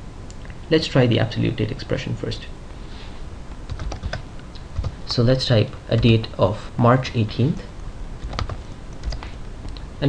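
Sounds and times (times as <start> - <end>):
keyboard keystrokes: 8.2 - 9.2.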